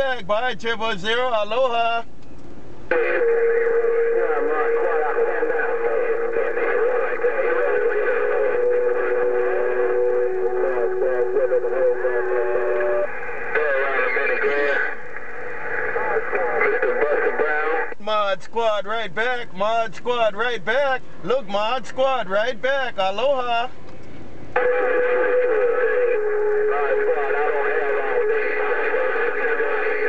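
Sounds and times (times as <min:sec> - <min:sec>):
garbled overlapping radio voices: 0:00.0 - 0:02.1, 0:02.9 - 0:23.8, 0:24.5 - 0:30.0
radio whistle tones: 0:02.9 - 0:17.9, 0:24.6 - 0:30.0.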